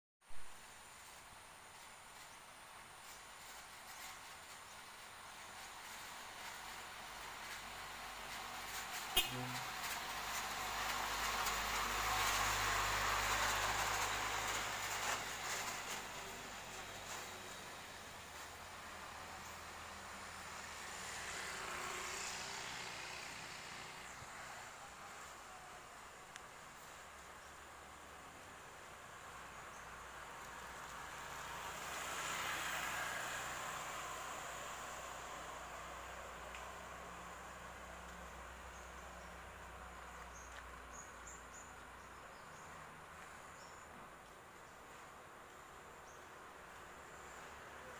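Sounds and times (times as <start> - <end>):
motorcycle passing by: 5.8 - 43.8.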